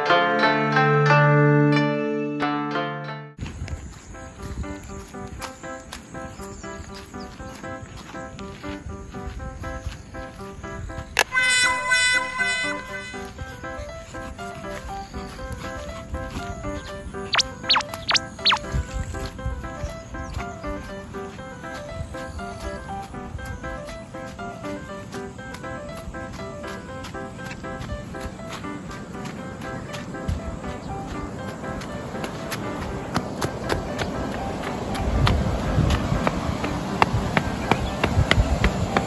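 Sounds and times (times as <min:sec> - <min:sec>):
light background music: 0:04.0 - 0:39.0
quick falling blips: 0:17.3 - 0:18.7.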